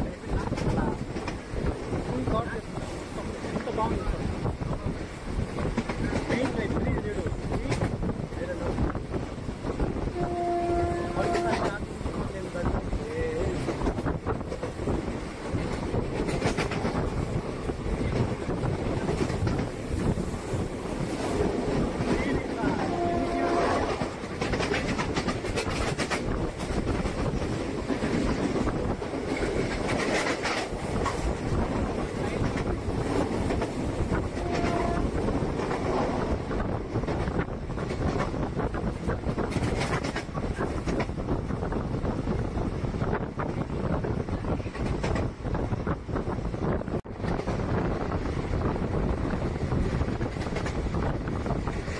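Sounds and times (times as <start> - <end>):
train rumble with rail clatter: 0.0 - 51.9
train horn blasts: 10.1 - 11.8, 22.7 - 24.1, 34.4 - 35.2.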